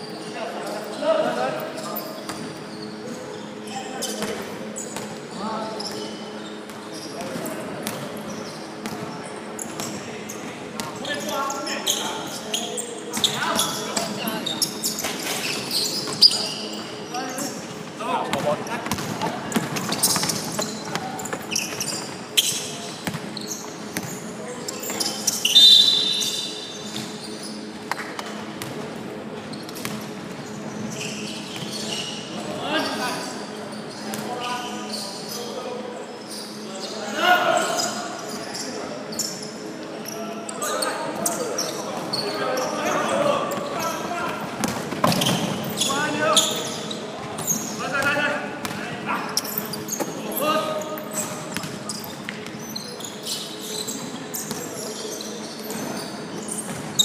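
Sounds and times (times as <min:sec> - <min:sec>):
shoe squeak: 0:00.0 - 0:27.8, 0:29.5 - 0:48.3, 0:49.1 - 0:57.0
basketball bouncing: 0:18.3 - 0:21.0.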